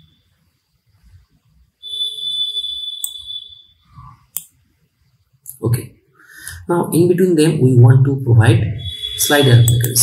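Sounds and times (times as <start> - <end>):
high electronic beep tone: 0.0 - 0.3, 1.8 - 4.2, 8.6 - 10.0.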